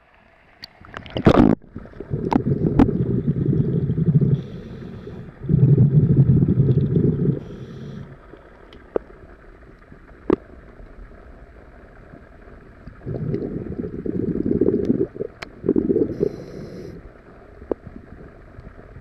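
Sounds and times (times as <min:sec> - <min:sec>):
bubbling scuba exhalations: 0:01.1 - 0:08.2, 0:13.0 - 0:17.1
regulator inhale hiss: 0:03.6 - 0:06.0, 0:07.0 - 0:08.6, 0:15.8 - 0:17.2
sharp underwater clicks: 0:09.8 - 0:10.5, 0:14.8 - 0:15.6.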